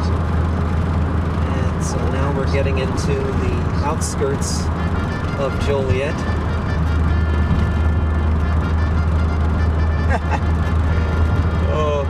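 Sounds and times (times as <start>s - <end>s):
car engine and tyres droning: 0.0s - 12.0s.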